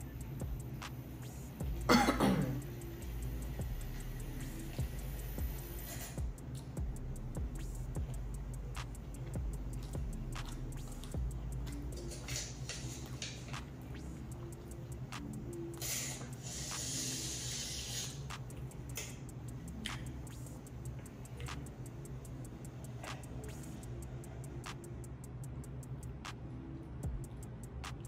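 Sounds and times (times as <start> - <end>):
quiet music: 0.0 - 28.0
wet chewing mouth clicks: 7.6 - 23.9
hissing breath: 15.6 - 18.4.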